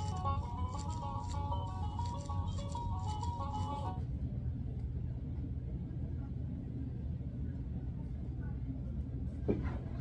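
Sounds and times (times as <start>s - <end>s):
toy playing electronic tune: 0.0s - 4.0s
low steady hum: 0.0s - 10.0s.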